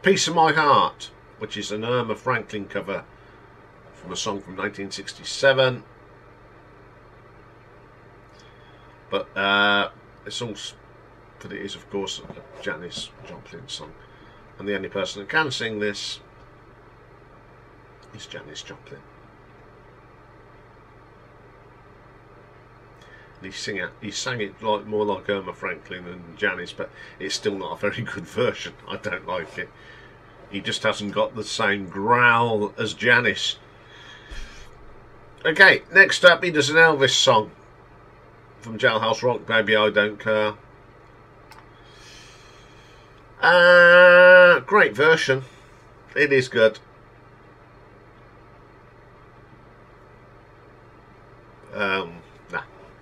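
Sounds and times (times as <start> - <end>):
low room hum: 0.0 - 53.0
soft breath out: 33.7 - 34.8
small click: 41.0 - 41.7.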